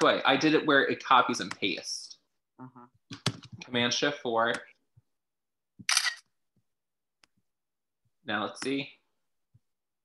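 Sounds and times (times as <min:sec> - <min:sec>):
camera shutter click: 0:05.9 - 0:06.2.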